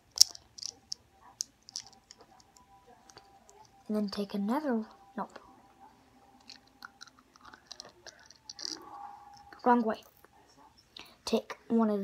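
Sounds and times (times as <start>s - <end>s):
plastic bricks clicking together: 0.0s - 3.2s, 6.4s - 8.8s.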